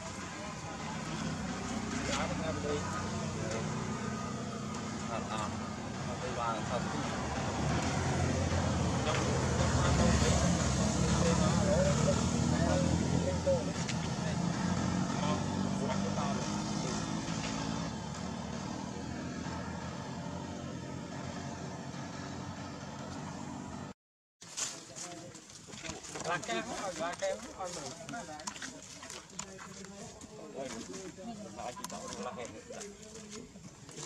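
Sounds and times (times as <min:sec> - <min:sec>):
vehicle engine running: 0:00.0 - 0:23.9.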